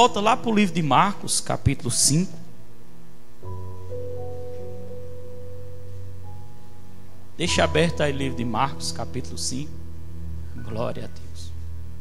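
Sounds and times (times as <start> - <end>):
soft instrumental music: 3.4 - 12.0.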